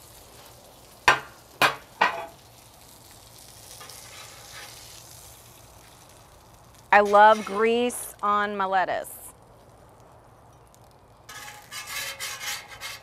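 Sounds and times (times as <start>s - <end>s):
bacon and eggs sizzling on griddle: 0.0s - 13.0s.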